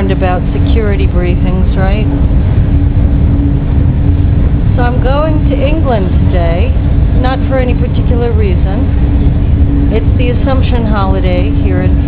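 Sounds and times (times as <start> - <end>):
train rumbling at speed: 0.0 - 12.0
person talking: 4.8 - 8.9, 10.0 - 12.0.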